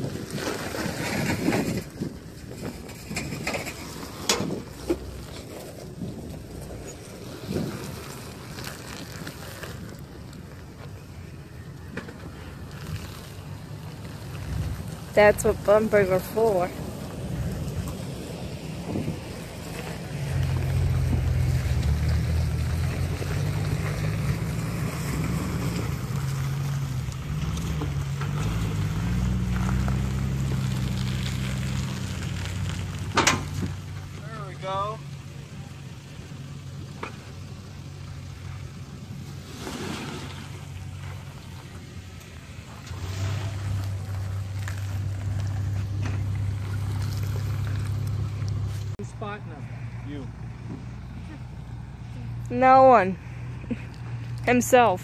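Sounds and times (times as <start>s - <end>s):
truck engine at low revs: 0.0s - 55.0s.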